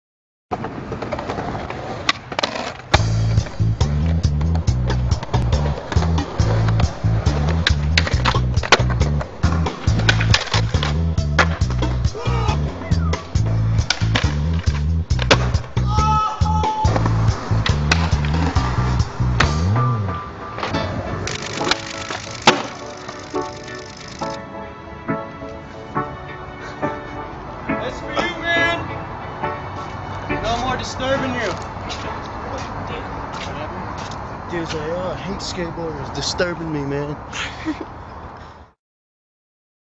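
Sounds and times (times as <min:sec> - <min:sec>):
skateboard wheels rolling: 0:00.5 - 0:24.5
music with heavy bassline: 0:03.0 - 0:24.4
skateboard pops and landings: 0:05.3 - 0:12.0, 0:13.8 - 0:15.7, 0:16.9 - 0:19.8, 0:20.6 - 0:23.4.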